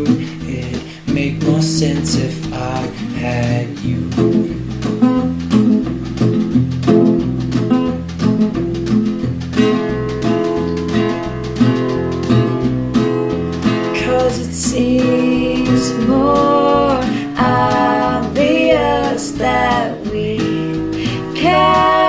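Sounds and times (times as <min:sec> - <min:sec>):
bass line: 0:00.0 - 0:22.0
sliding melody line: 0:00.0 - 0:22.0
strummed acoustic guitar: 0:00.0 - 0:22.0.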